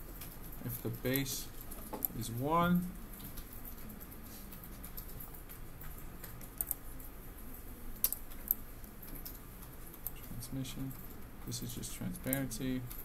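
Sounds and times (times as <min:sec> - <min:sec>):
computer keyboard keystrokes: 0:00.1 - 0:02.3, 0:03.1 - 0:07.1, 0:08.0 - 0:11.2.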